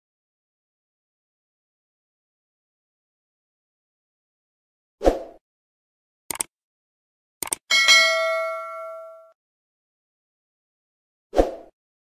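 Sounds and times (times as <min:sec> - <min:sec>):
double mouse click: 0:07.4 - 0:07.6
notification bell chiming: 0:07.7 - 0:09.3.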